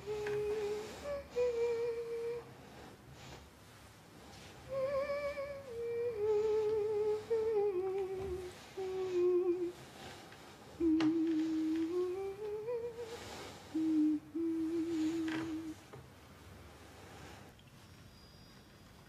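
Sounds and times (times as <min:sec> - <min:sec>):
woman humming a slow tune: 0:00.0 - 0:02.5, 0:04.7 - 0:09.9, 0:10.7 - 0:16.0.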